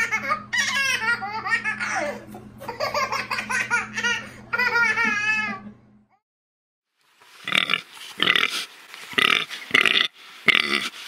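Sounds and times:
baby laughing: 0.0 - 5.7
pig grunting: 7.4 - 11.0.

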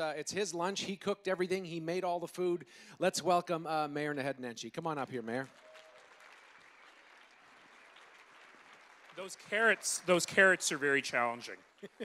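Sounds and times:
audience applause: 5.4 - 12.0.

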